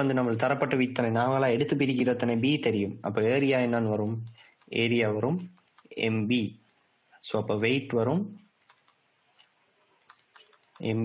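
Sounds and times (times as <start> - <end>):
stylus tapping on pen tablet: 10.0 - 10.8.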